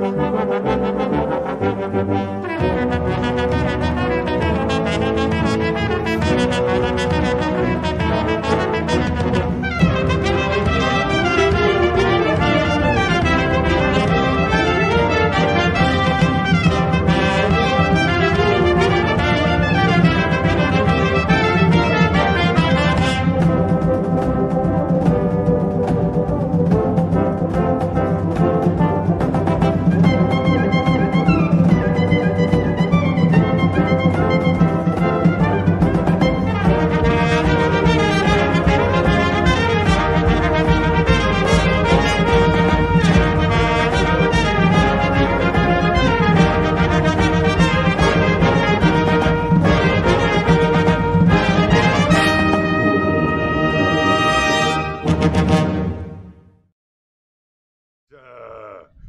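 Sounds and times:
trumpets playing melody: 0.0s - 24.4s, 26.9s - 56.0s
brass band playing: 0.0s - 56.3s.

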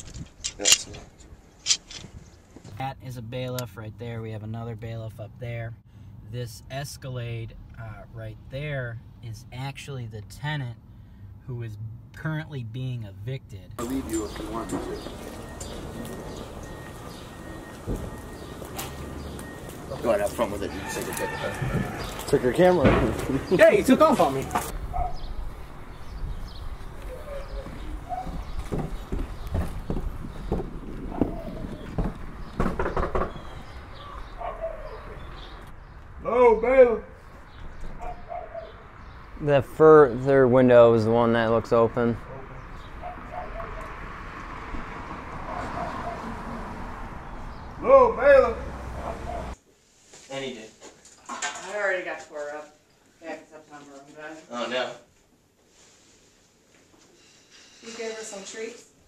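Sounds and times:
footsteps on wooden porch: 13.8s - 36.2s.

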